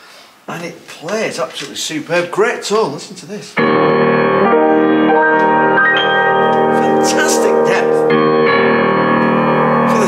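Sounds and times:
grand piano chords: 3.6 - 10.0.

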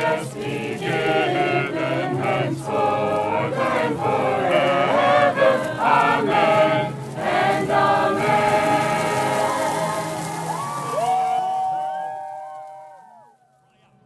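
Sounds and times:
crowd singing a hymn: 0.0 - 11.0.

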